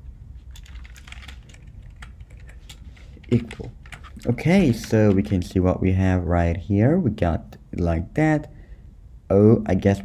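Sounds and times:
typing on a computer keyboard: 0.5 - 5.3.

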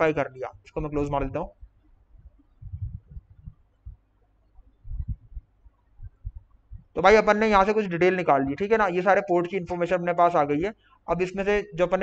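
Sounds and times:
soft dull low thumps: 0.6 - 8.6.

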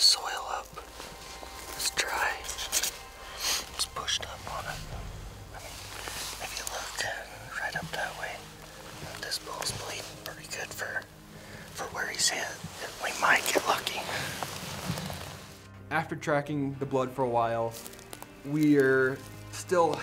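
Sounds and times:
people whispering: 0.0 - 14.5.

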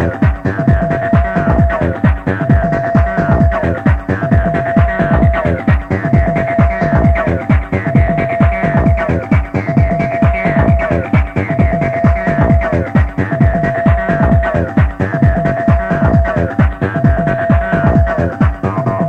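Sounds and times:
deep bass notes dropping in pitch: 0.0 - 19.0
fast electronic dance beat: 0.0 - 19.0.

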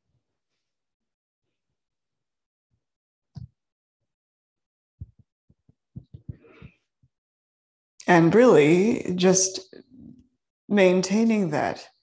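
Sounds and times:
thumps on clip-on microphone: 3.4 - 3.6, 5.0 - 7.1.

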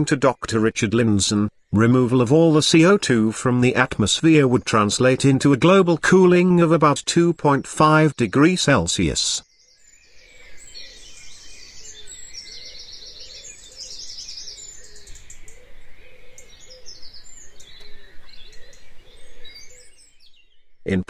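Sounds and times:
birds chirping and singing: 0.0 - 21.0.

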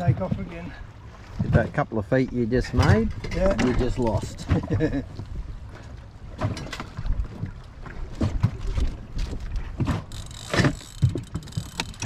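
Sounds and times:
choppy water: 0.0 - 12.0
wind: 0.0 - 12.0
fishing reel cranking: 10.1 - 12.0.

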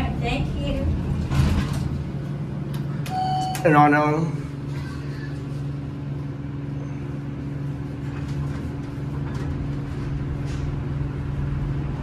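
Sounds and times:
steady low hum: 0.0 - 12.0
elevator doors sliding shut: 0.9 - 2.3.

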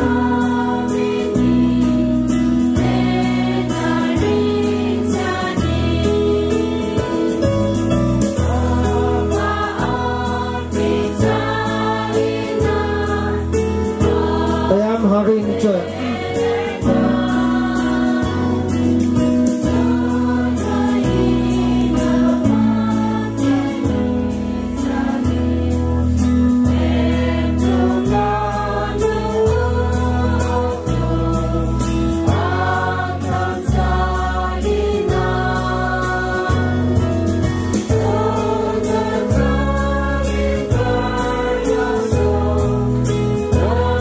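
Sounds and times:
choir singing a hymn: 0.0 - 44.0.

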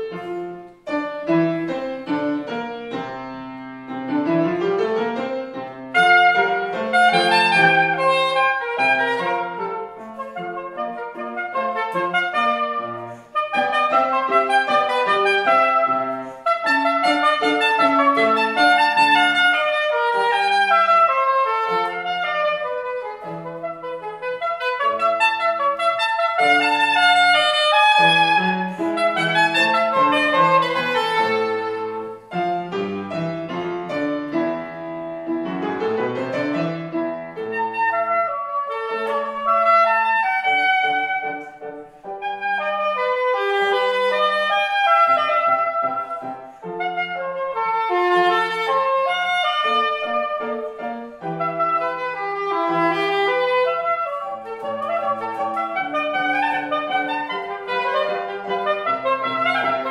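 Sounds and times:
piano accompaniment: 0.0 - 59.9
soprano saxophone melody: 0.0 - 59.9.

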